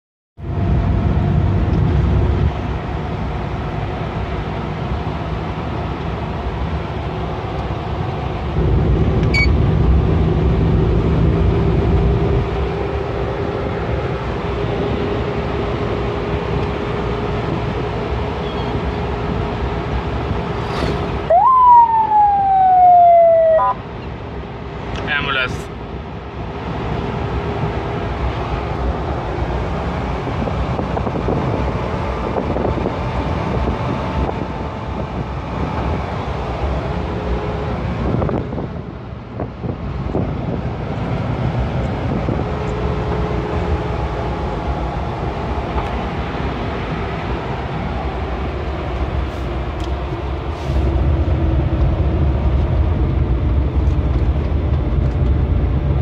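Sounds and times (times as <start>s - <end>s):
van engine and road noise: 0.4s - 56.0s
electronic siren wail: 21.2s - 23.9s
brief siren blip: 21.3s - 23.9s.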